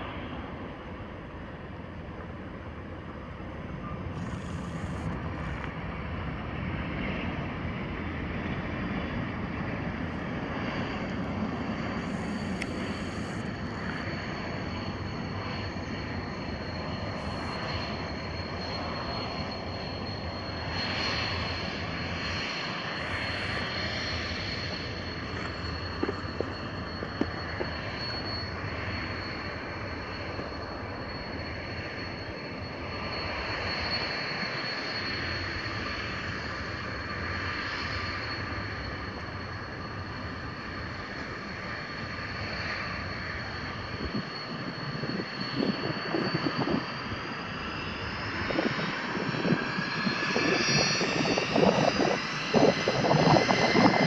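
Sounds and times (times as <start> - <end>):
jet engines rushing and whining: 0.0 - 54.0.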